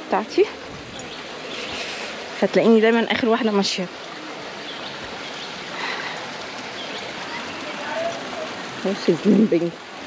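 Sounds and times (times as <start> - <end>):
distant voices: 0.0 - 9.7
river rushing: 0.0 - 10.0.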